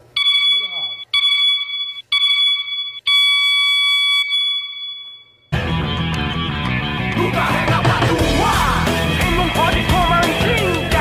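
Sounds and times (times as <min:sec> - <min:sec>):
interval timer beeping: 0:00.2 - 0:05.5
loud music: 0:05.6 - 0:11.0.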